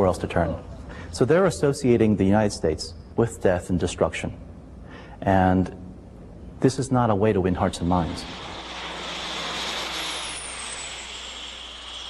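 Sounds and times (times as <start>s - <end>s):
low-flying plane engine overhead: 7.2s - 12.0s
high whine falling in pitch: 7.3s - 12.0s.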